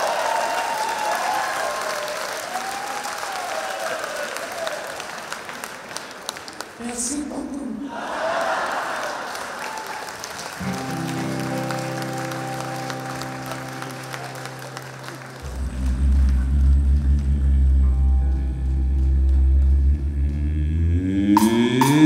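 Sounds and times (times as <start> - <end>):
crowd applause: 0.0 - 6.8, 7.9 - 19.9
country band chords: 10.6 - 22.0
deep bass note: 15.3 - 22.0.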